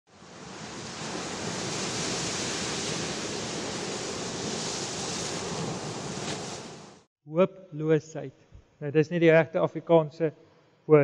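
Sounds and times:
ocean surf rushing: 0.1s - 7.1s.

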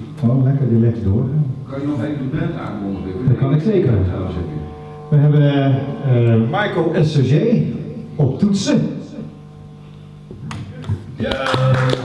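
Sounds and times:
keyboard held note: 1.8s - 12.0s
hand claps: 10.5s - 12.0s.

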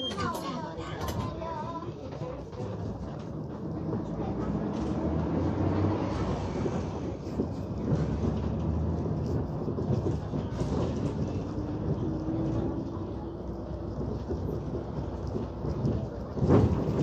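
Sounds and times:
bus engine and road drone: 0.0s - 17.0s.

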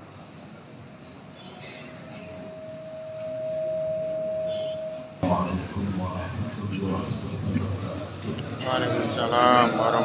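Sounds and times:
feedback whistling tone: 2.3s - 5.2s.

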